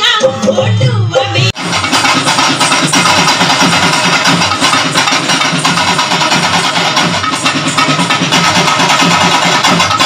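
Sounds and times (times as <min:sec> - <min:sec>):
folk drum ensemble: 0:00.0 - 0:10.0.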